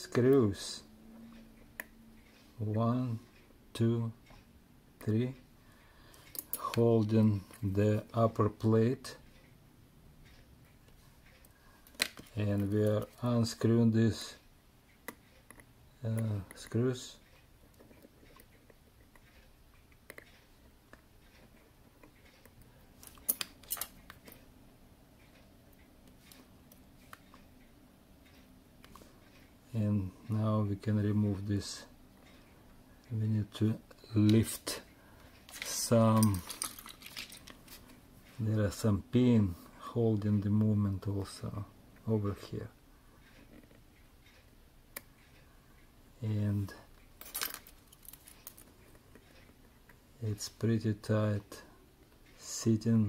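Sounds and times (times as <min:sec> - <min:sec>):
metal hand tools clicking: 0:35.5 - 0:37.5
metal watch bracelet clinking: 0:35.5 - 0:37.8.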